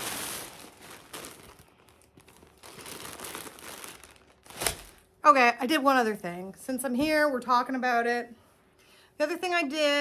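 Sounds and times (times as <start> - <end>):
bag crinkling and rustling: 0.0 - 5.2.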